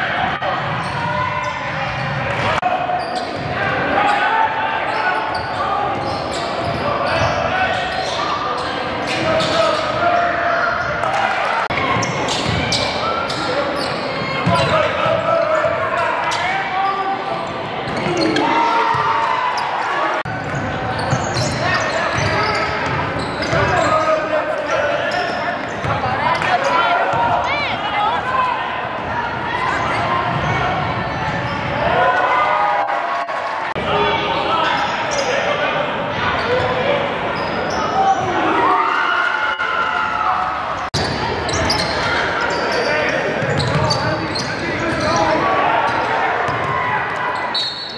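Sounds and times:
echoing voices: 0:00.0 - 0:39.0.

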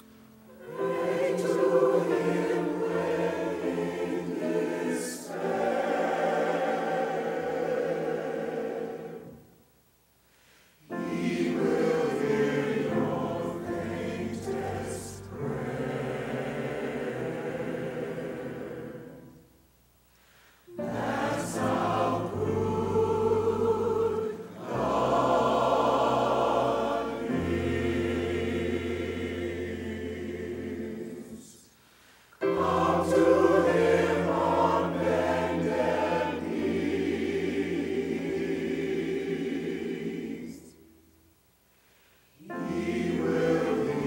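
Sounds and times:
gospel choir singing: 0:00.0 - 0:09.6, 0:10.4 - 0:19.5, 0:20.2 - 0:44.0.

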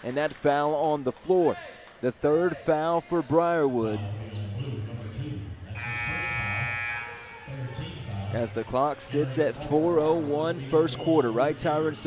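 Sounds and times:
murmur of crowd: 0:01.1 - 0:12.0
scoreboard horn buzzing: 0:05.7 - 0:07.5.

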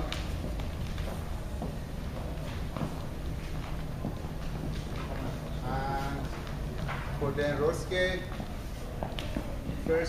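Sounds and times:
low room hum: 0:00.0 - 0:10.0
shoes tapping on hardwood floor: 0:00.0 - 0:10.0.

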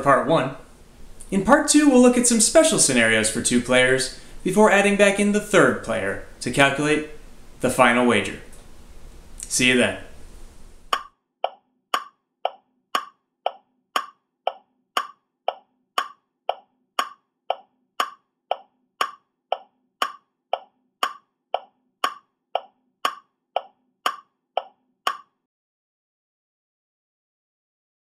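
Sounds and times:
steady ticking: 0:10.9 - 0:25.3.

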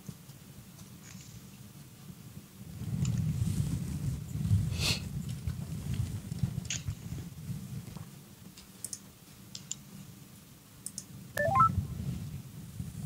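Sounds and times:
faint clicks: 0:08.6 - 0:09.8, 0:10.8 - 0:11.1
rising electronic beeps: 0:11.4 - 0:11.7.

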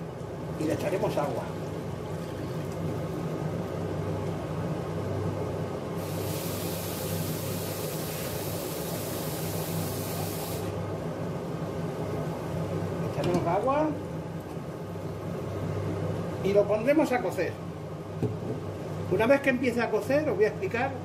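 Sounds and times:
induction hob humming: 0:00.0 - 0:21.0
even hiss: 0:06.0 - 0:10.8.

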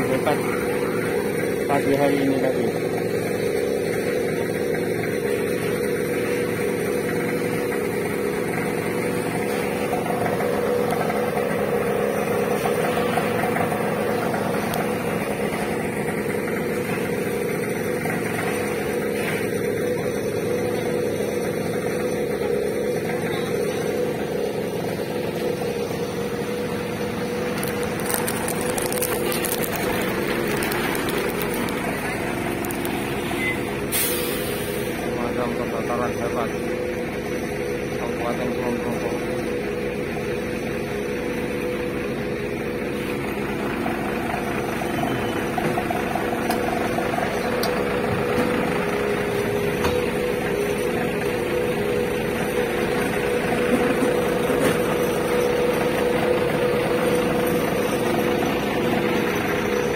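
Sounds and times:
truck engine droning: 0:00.0 - 0:59.9.

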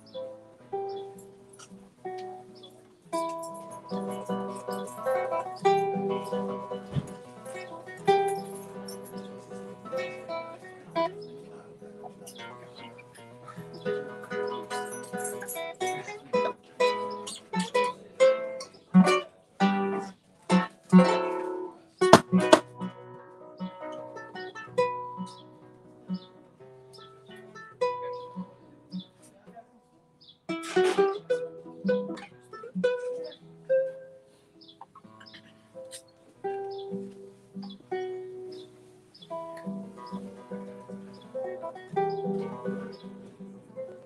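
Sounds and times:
fast strummed guitar chords: 0:00.0 - 0:26.3, 0:38.1 - 0:44.0
fingerpicked classical guitar: 0:00.0 - 0:44.0.

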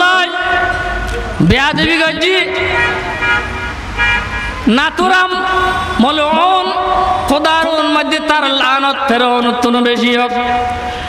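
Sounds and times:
man speaking over loudspeaker: 0:00.0 - 0:03.2, 0:04.6 - 0:10.9.

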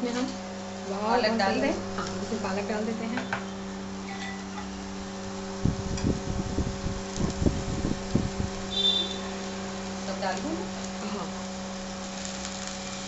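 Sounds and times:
cooktop hum: 0:00.0 - 0:13.0.

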